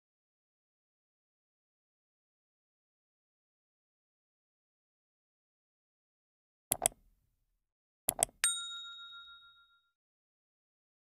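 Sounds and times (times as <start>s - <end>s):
quick mouse clicks: 6.7s - 7.0s
notification bell ding: 8.4s - 10.0s.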